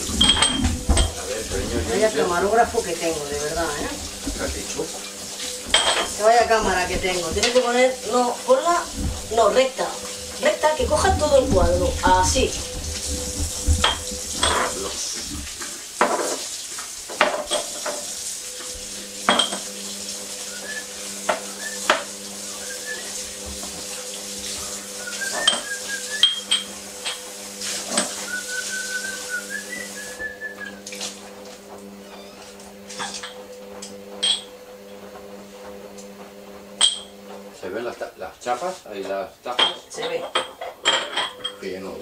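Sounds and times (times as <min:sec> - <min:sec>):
tap running: 0:00.0 - 0:38.1
dishes and cutlery clinking in sink: 0:00.0 - 0:42.0.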